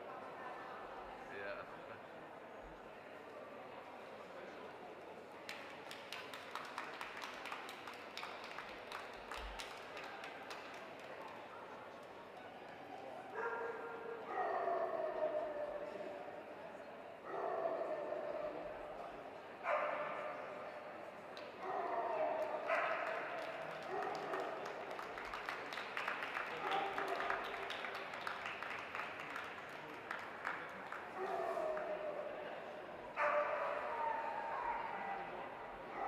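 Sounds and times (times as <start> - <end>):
murmur of voices: 0.0 - 36.0.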